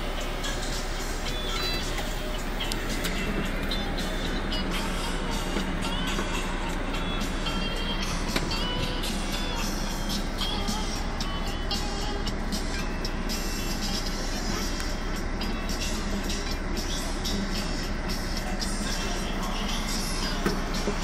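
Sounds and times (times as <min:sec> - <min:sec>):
bus interior rumble: 0:00.0 - 0:21.0
music playing: 0:00.0 - 0:21.0.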